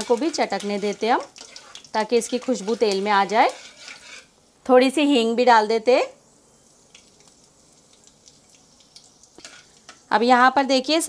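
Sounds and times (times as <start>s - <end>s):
hot oil sizzling: 0.0s - 11.0s
seeds popping in oil: 6.6s - 10.1s.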